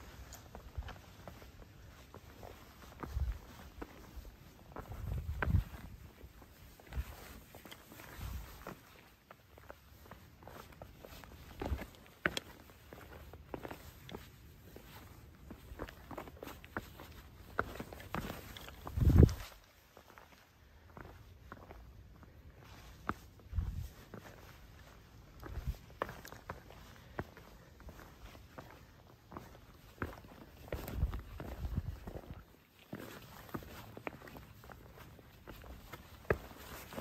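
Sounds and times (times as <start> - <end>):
footsteps scuffing on rocks: 0.0 - 20.1, 22.9 - 37.0.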